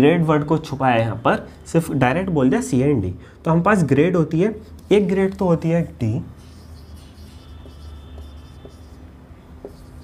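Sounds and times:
marker pen writing on whiteboard: 4.2 - 10.0.

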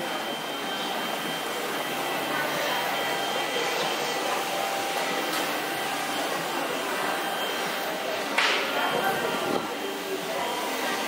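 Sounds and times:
echoing background noise: 0.0 - 11.0
murmur of voices: 0.0 - 11.0.

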